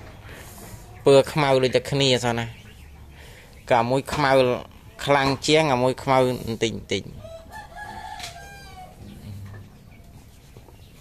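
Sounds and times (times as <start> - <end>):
rooster crowing: 7.2 - 9.2.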